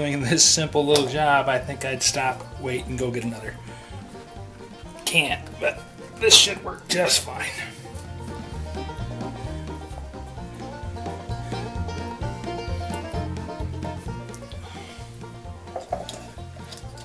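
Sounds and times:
background music with bass line: 0.0 - 17.0.

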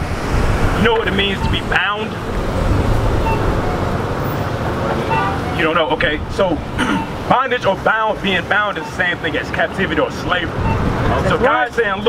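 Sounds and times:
low outdoor rumble: 0.0 - 7.3.

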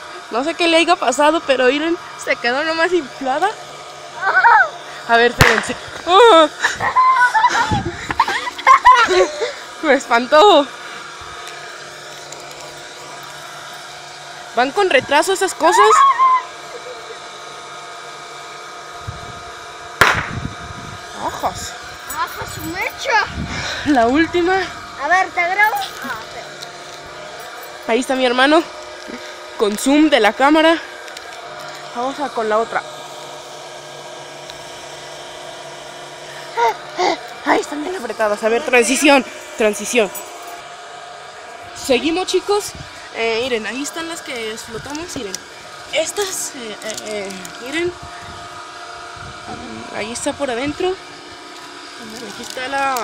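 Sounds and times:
motor hum with whine: 0.0 - 53.0
person speaking: 49.5 - 50.8.

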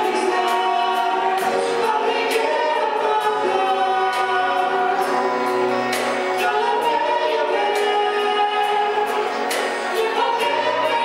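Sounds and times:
harmony voices: 0.0 - 11.0
rock band playing: 0.0 - 11.0.

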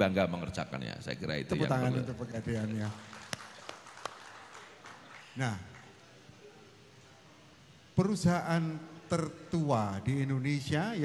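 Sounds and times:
faint room noise: 0.0 - 11.0
scattered hand claps: 2.8 - 6.0.

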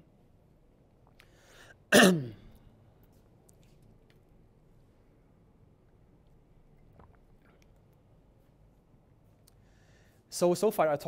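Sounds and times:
man coughing: 1.9 - 2.5.

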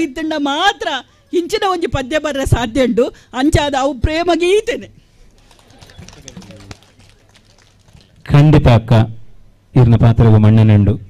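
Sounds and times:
faint talking: 5.5 - 7.7.

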